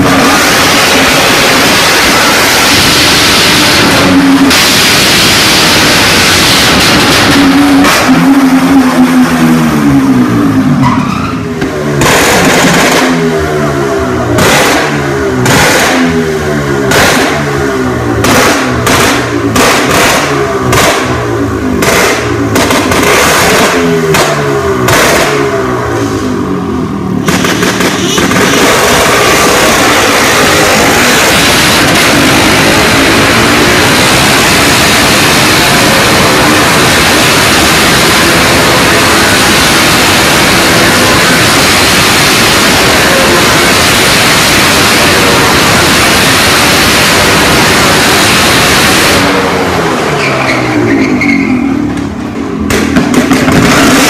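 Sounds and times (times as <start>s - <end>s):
motorcycle engines running hard: 0.0s - 54.0s.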